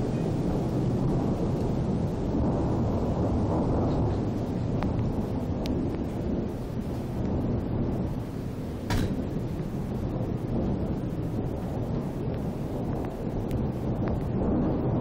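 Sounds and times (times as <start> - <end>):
thunder rumbling: 0.0 - 15.0.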